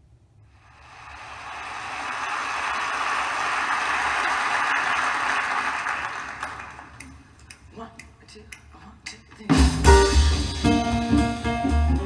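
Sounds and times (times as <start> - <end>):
audience applause over loudspeakers: 0.7 - 7.0.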